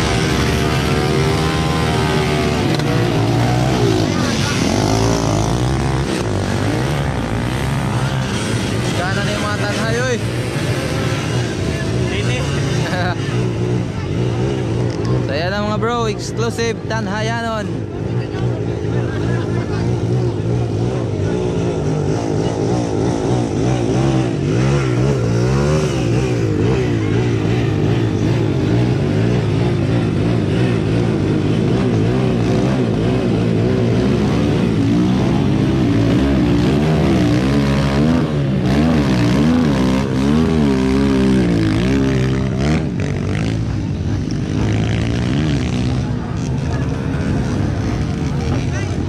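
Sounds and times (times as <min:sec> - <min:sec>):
dirt bike engines revving: 0:00.0 - 0:49.0.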